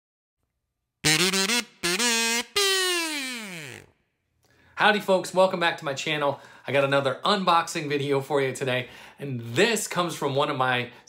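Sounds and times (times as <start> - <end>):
kazoo buzzing: 1.0 - 3.9.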